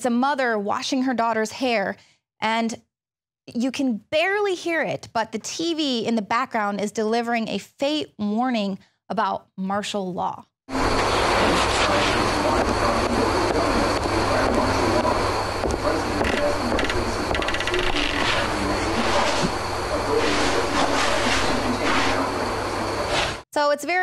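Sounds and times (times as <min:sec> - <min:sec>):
television announcer's voice: 0:03.5 - 0:24.0.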